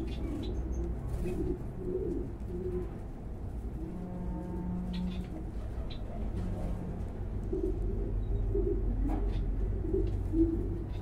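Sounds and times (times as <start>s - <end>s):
pigeon cooing: 0.0s - 3.0s, 3.8s - 11.0s.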